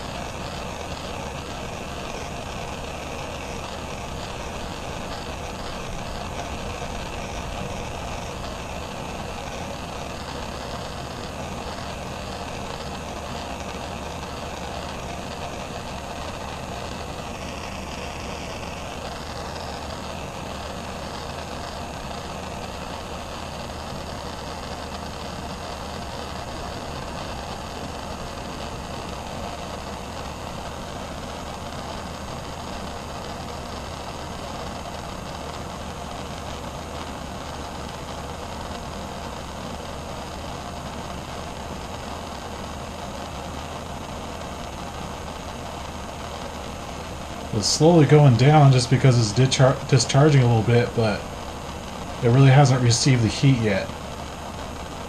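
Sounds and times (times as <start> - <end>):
propane torch hissing: 0.0 - 55.0.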